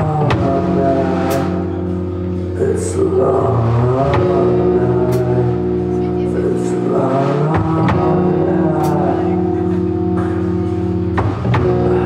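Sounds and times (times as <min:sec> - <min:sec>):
live rock band: 0:00.0 - 0:12.0.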